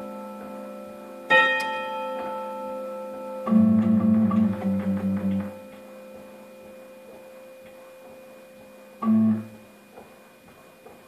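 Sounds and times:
carillon bells ringing: 0.0 - 9.6.

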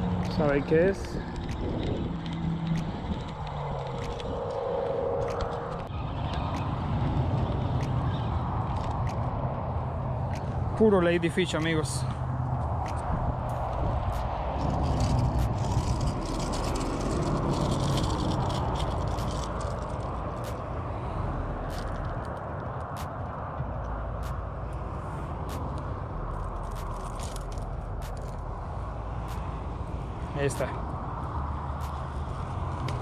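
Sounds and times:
steady low rumble: 0.0 - 33.0
scraping and clicking: 14.2 - 20.6.

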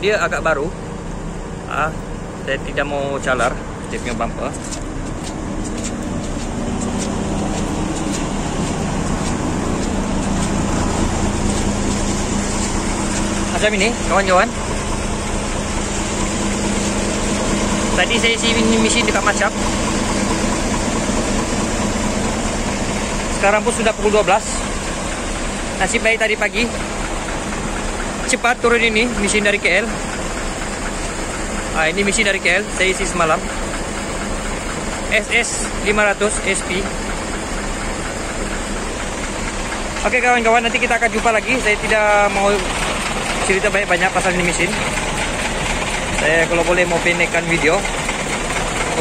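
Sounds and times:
diesel truck engine idling: 0.0 - 49.0.

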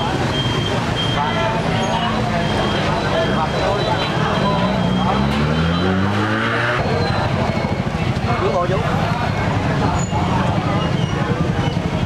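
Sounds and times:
motorbike engine revving: 0.0 - 12.0
people talking: 0.0 - 12.0.

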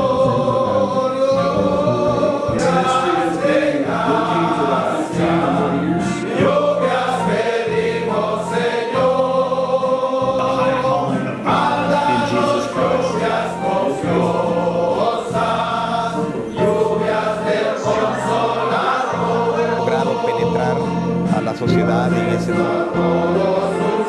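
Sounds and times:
choir singing gospel: 0.0 - 24.0.

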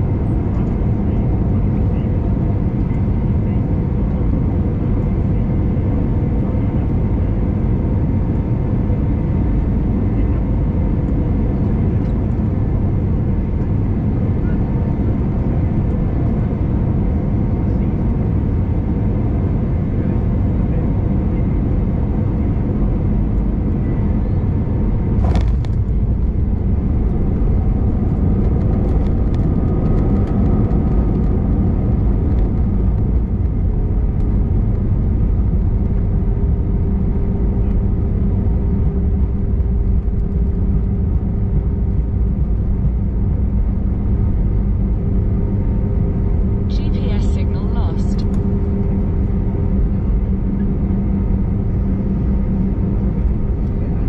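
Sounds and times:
airplane cabin rumble: 0.0 - 54.0.

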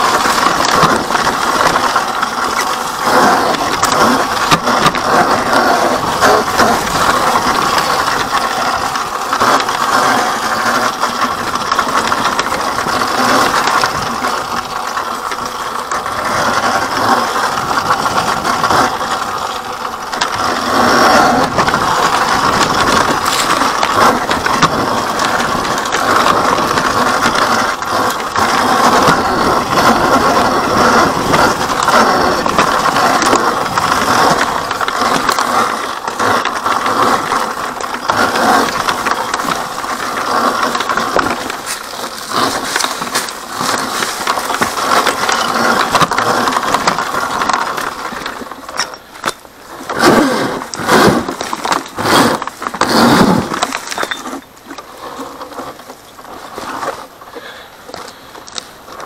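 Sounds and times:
dirt bike frame rattling: 0.0 - 59.0
tyres crunching over stones: 0.0 - 59.0.

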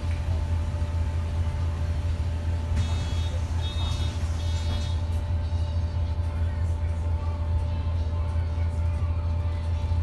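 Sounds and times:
bus engine idling: 0.0 - 10.0.

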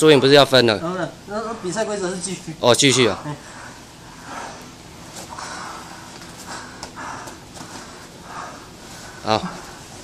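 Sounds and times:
heavy breathing: 3.0 - 10.0.

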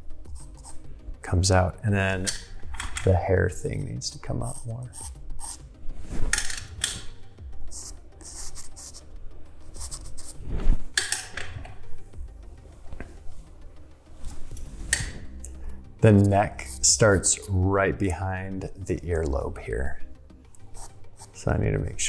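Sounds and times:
pencil scratching on paper: 0.2 - 0.8, 4.4 - 5.6, 7.7 - 10.4, 20.7 - 21.4.

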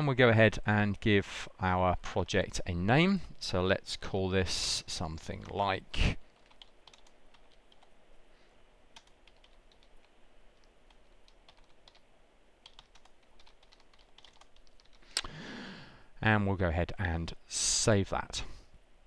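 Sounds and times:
keyboard typing: 6.3 - 7.9, 8.9 - 15.0.

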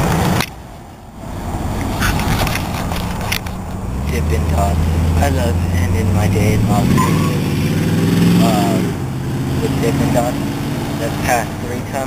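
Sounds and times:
vehicle engine running: 1.2 - 12.0.

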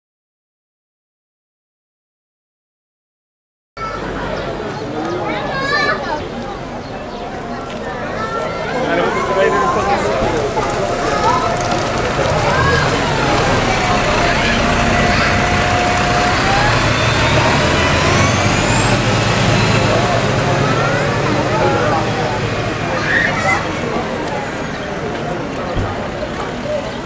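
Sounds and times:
bus diesel engine pulling away: 3.8 - 27.0.

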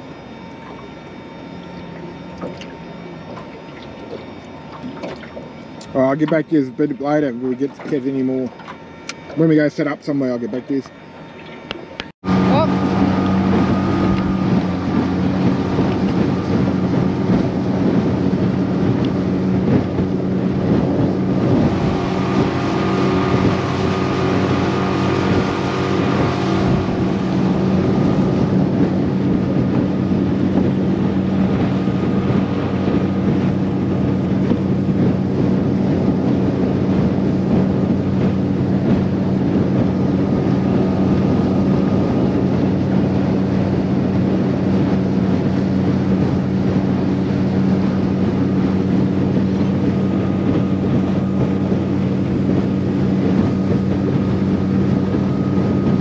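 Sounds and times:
outboard motor running: 0.0 - 56.0
wind buffeting microphone: 11.6 - 56.0.

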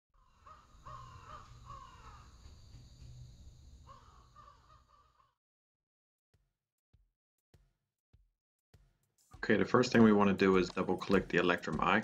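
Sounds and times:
harsh bird calls: 0.2 - 3.2, 3.8 - 5.4.

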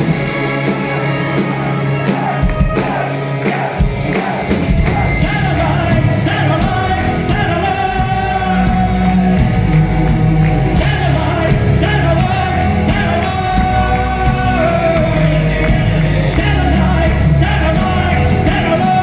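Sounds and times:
bass guitar: 0.0 - 19.0
drum kit: 0.0 - 19.0
electric guitars: 0.0 - 19.0
man singing: 2.0 - 9.4, 10.6 - 19.0.

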